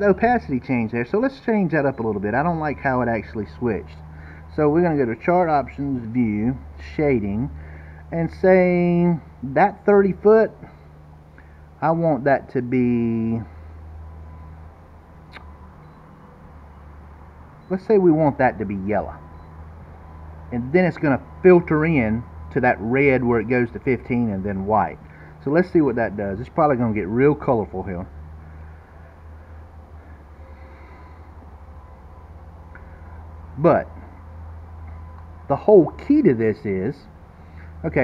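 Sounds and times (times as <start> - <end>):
low steady hum: 0.0 - 38.0
faint short click: 15.3 - 15.5.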